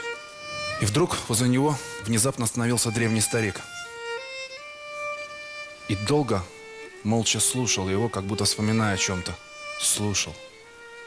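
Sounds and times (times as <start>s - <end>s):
solo violin melody: 0.0s - 11.0s.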